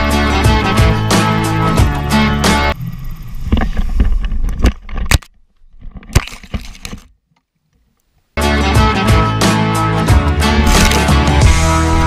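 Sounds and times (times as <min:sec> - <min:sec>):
background music: 0:00.0 - 0:02.8, 0:08.4 - 0:12.0.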